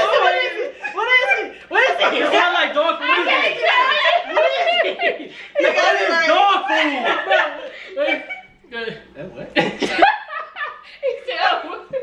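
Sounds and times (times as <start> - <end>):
indistinct talk: 0.0 - 12.0
people laughing: 0.0 - 12.0.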